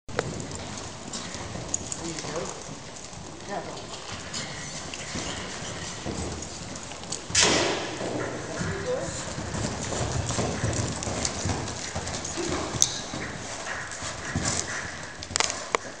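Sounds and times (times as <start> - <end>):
horse hoofbeats on dirt: 0.1 - 16.0.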